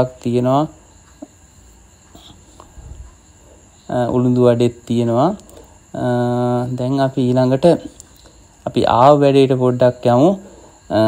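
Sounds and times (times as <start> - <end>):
faint low hum: 0.0 - 11.0
high-pitched whine: 0.0 - 11.0.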